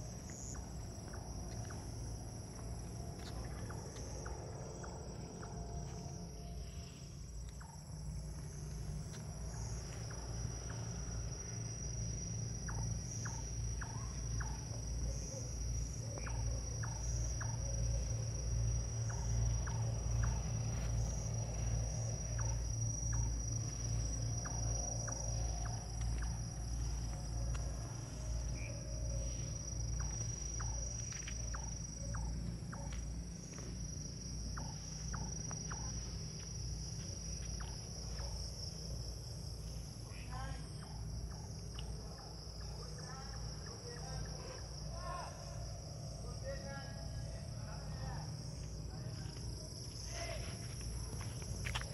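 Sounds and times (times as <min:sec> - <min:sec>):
crickets trilling: 0:00.0 - 0:51.9.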